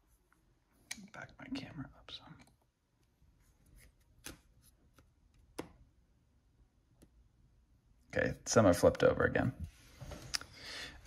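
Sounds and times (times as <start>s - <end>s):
cards sliding: 3.7s - 5.7s.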